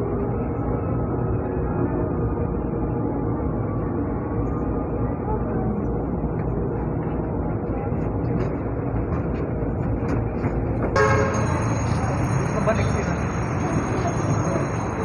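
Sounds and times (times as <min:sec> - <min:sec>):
train car rumble: 0:00.0 - 0:15.0
horn-like tone: 0:11.0 - 0:11.8.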